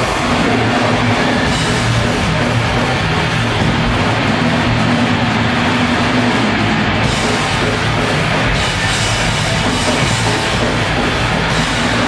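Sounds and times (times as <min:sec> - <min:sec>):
death metal band playing live: 0:00.0 - 0:12.0.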